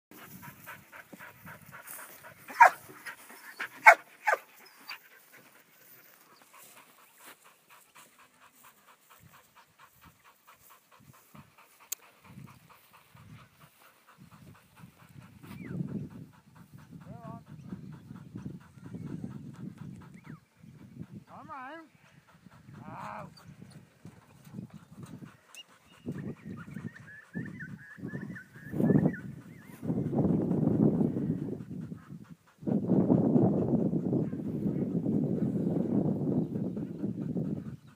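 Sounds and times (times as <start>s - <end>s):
dog barking sharply: 2.5s - 2.8s, 3.8s - 4.4s.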